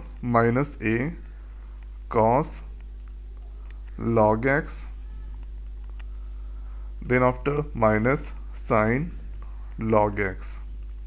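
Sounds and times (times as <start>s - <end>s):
low electrical hum: 0.0s - 11.0s
faint clicks: 2.8s - 4.0s, 5.0s - 6.2s.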